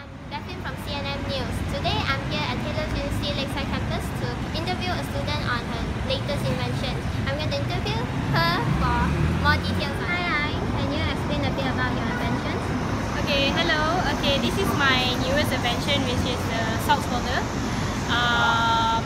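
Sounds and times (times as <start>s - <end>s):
road traffic rumble: 0.0s - 19.0s
young woman speaking: 0.0s - 19.0s.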